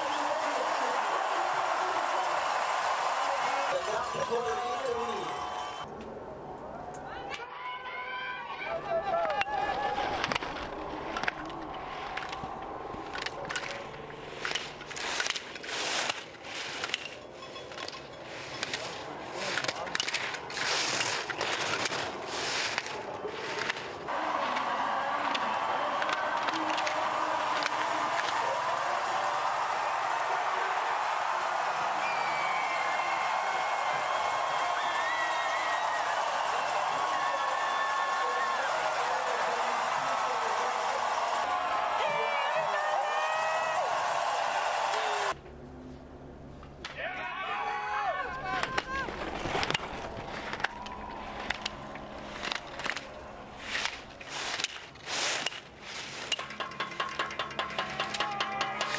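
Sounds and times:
shouts and whistles: 0.0 - 5.9, 28.6 - 39.1
crowd cheering: 0.0 - 17.0, 17.8 - 45.4, 47.0 - 54.7, 56.6 - 58.9
skis scraping on hard snow: 13.2 - 24.1, 48.9 - 56.8.

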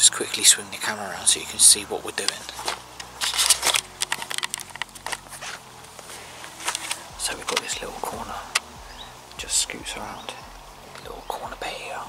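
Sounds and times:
scattered clicks: 2.2 - 5.3
camera handling rustling: 2.2 - 8.7.

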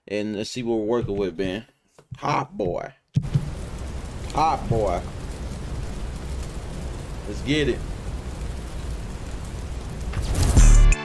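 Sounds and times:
fire burning with rushing roar: 3.2 - 11.0.

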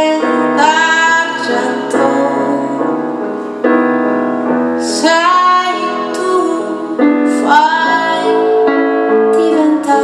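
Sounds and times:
woman singing: 0.0 - 3.2, 4.8 - 10.0.

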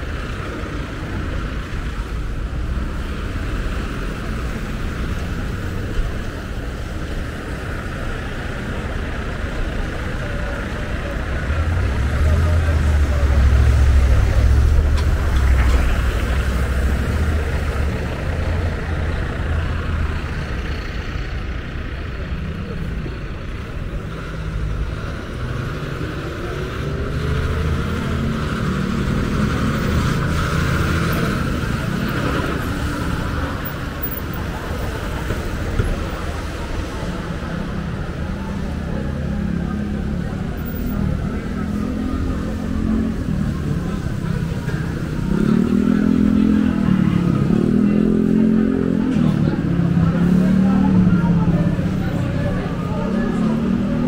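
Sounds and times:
car and truck engines: 0.0 - 54.0
heavy truck rumble: 0.0 - 54.0.

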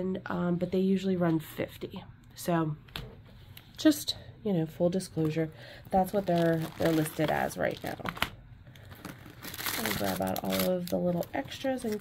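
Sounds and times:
paper and plastic crinkling: 6.0 - 12.0.

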